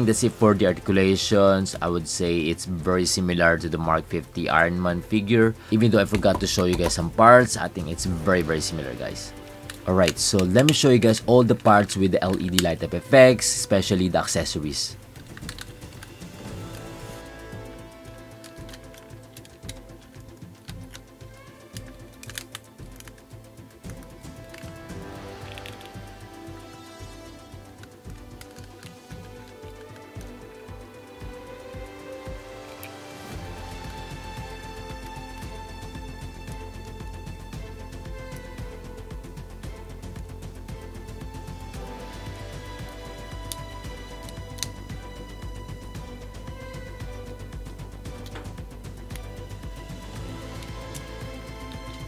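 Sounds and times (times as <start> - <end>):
background music: 0.0 - 52.0
small clicks of figure joints: 9.5 - 12.8, 15.2 - 16.9, 18.2 - 26.1, 27.6 - 30.4, 32.3 - 33.0, 42.8 - 45.0, 48.1 - 49.4.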